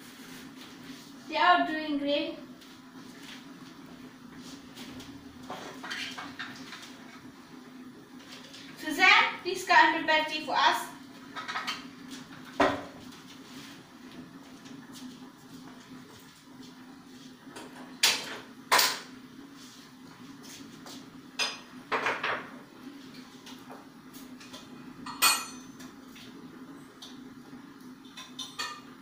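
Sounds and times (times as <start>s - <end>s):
pots and utensils clattering: 5.5s - 6.9s, 11.3s - 11.9s, 17.6s - 19.1s, 24.4s - 25.8s, 28.0s - 28.9s.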